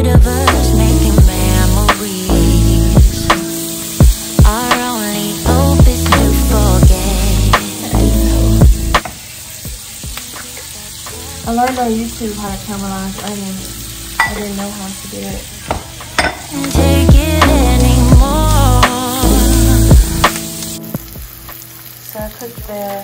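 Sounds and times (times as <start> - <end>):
music with heavy beat and singing: 0.0 - 12.0, 15.2 - 21.3
vegetables sizzling in a pan: 0.0 - 23.0.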